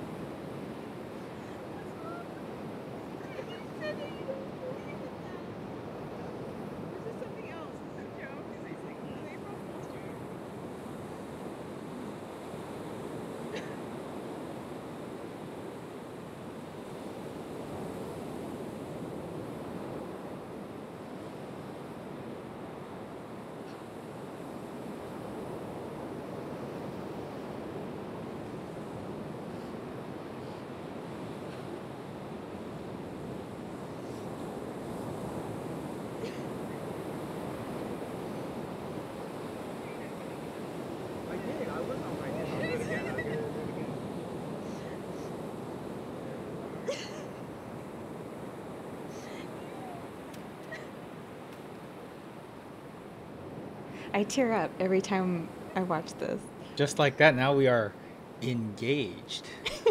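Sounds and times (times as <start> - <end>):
ocean surf washing onto beach: 0.0 - 59.9.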